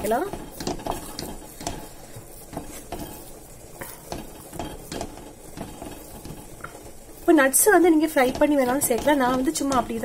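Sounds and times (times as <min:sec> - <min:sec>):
wooden spatula scraping metal pan: 0:00.0 - 0:10.0.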